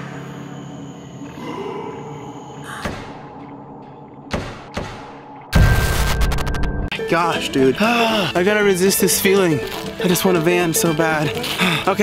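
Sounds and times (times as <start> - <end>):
background music: 2.8 - 12.0.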